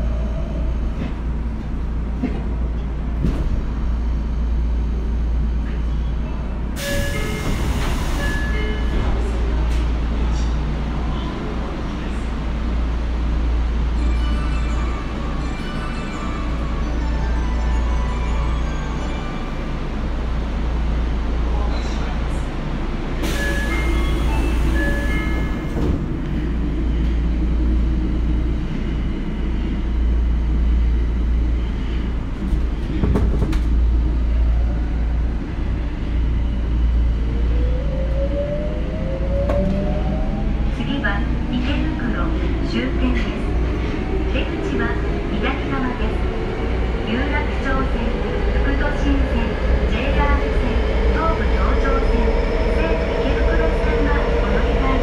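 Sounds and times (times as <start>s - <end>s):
subway car wheels rumbling: 0.0s - 55.0s.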